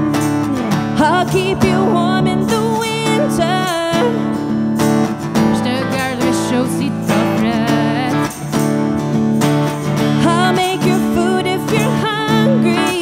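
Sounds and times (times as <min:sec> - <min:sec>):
country band music: 0:00.0 - 0:13.0
strummed acoustic guitar: 0:00.0 - 0:13.0
tambourine: 0:00.0 - 0:13.0.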